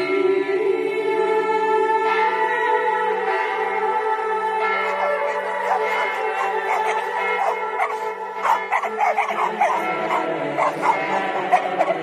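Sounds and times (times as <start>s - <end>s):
dog barking and yipping: 4.8s - 12.0s.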